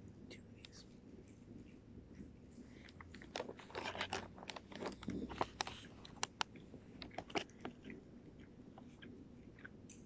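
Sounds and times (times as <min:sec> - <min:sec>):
person chewing crunchy cookie: 0:01.2 - 0:10.0
plastic wrapper crinkling: 0:03.0 - 0:06.4.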